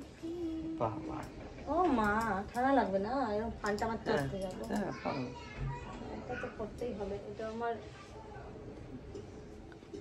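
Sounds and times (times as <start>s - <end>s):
child's voice: 4.8s - 6.6s.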